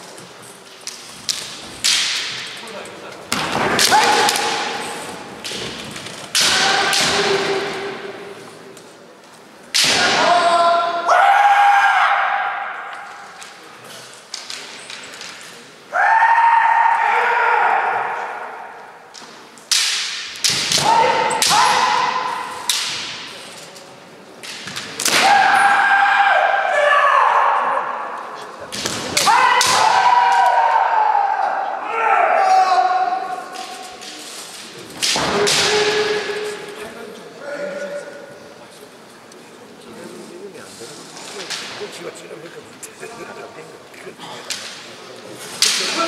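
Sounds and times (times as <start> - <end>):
bamboo sword strikes cracking: 1.3 - 2.5, 19.7 - 23.3
fencers shouting: 3.5 - 5.5, 6.3 - 8.2, 9.8 - 13.3, 20.0 - 23.2, 25.0 - 28.2, 28.9 - 34.0, 35.1 - 36.7.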